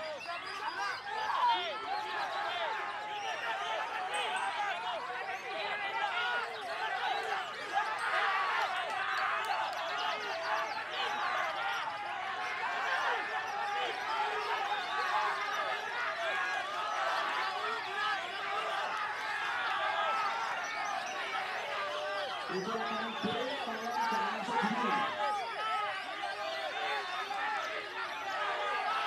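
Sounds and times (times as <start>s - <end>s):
chorus of songbirds singing: 16.4s - 25.2s.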